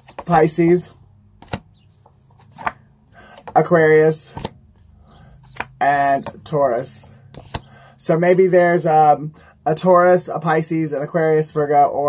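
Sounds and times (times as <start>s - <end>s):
cards snapping: 0.0s - 0.5s, 1.4s - 3.6s, 4.3s - 4.6s, 5.4s - 6.4s, 7.4s - 7.7s
cards rustling: 0.0s - 7.7s.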